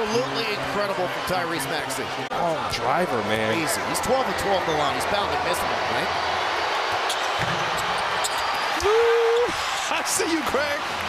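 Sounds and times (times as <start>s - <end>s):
arena crowd noise: 0.0s - 11.0s
knocks and squeaks on court: 7.1s - 8.6s.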